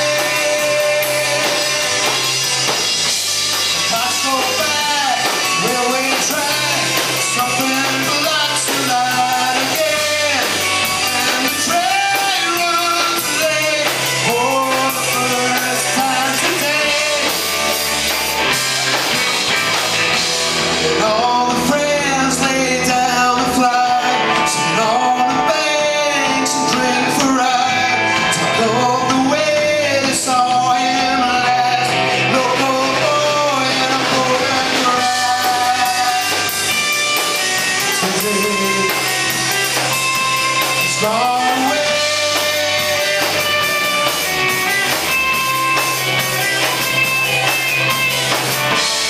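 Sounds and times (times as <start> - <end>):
sung vocals: 0.0 - 19.0, 20.6 - 49.0
bass guitar: 0.0 - 49.0
drum kit: 0.0 - 49.0
electric guitars: 0.0 - 49.0.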